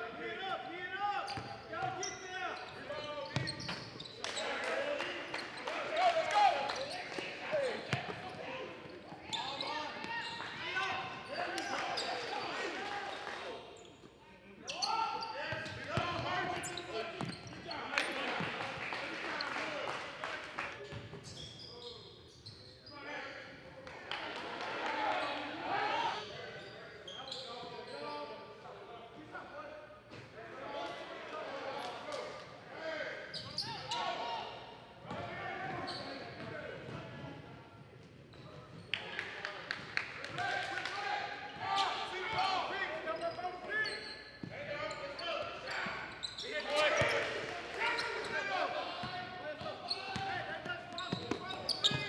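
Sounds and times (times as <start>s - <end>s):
voices of players and spectators: 0.0s - 52.0s.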